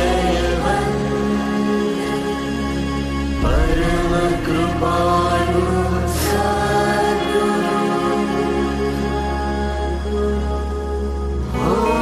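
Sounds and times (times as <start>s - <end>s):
devotional mantra chanting: 0.0s - 12.0s
steady sustained drone: 0.0s - 12.0s.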